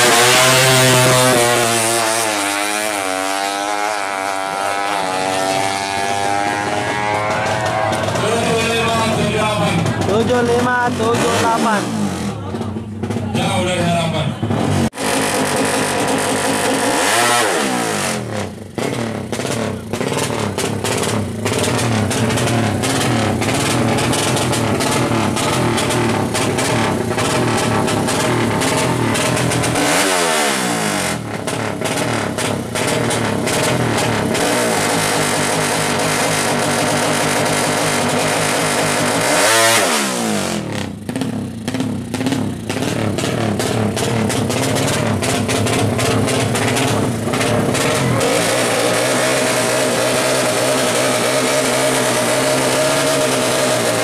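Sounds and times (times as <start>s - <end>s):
motorcycle engine revving hard: 0.0s - 54.0s.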